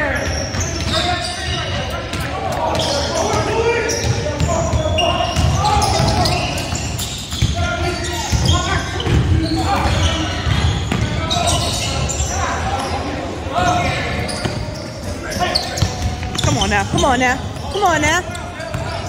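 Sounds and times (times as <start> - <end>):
echoing voices: 0.0 - 19.0.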